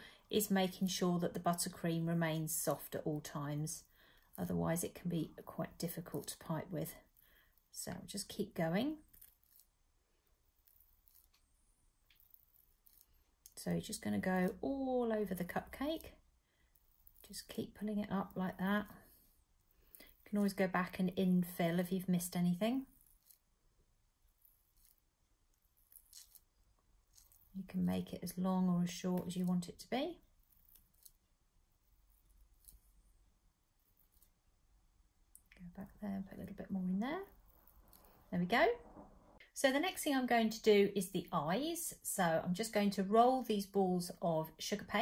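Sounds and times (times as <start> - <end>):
plastic piping bag rustling: 6.0 - 23.5, 24.3 - 33.1.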